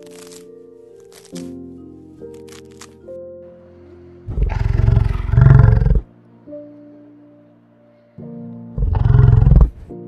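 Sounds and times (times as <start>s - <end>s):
soft background music: 0.0s - 10.0s
large animal deep rough call: 4.3s - 6.1s, 8.8s - 9.9s.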